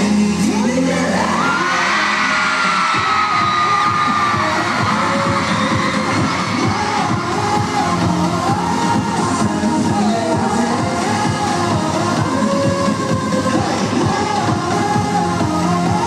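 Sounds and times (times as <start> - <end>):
pop song over sound system: 0.0 - 16.0
crowd cheering: 1.2 - 6.9.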